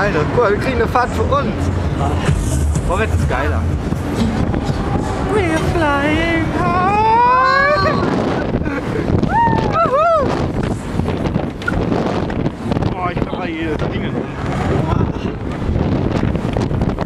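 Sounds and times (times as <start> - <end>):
wind rushing past microphone: 0.0 - 17.0
riders wailing and shrieking: 6.7 - 8.4.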